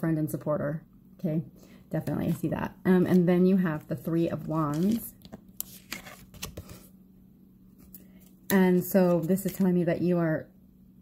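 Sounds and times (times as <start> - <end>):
faint low hum: 0.0 - 11.0
cards clicking and tapping: 4.4 - 6.8.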